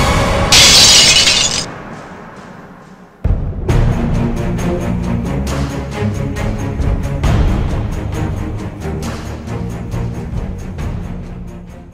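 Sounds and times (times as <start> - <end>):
background music: 0.0 - 11.9
glass shattering: 0.5 - 1.7.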